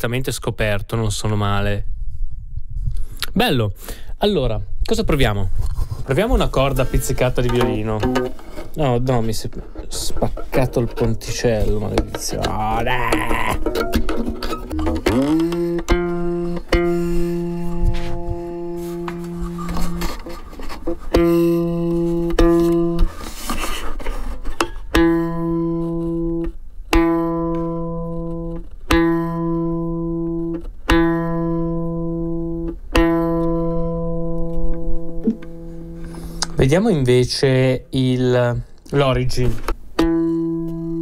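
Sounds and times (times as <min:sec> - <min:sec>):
violin string plucked: 0:06.6 - 0:23.2, 0:24.5 - 0:36.8, 0:39.4 - 0:41.0.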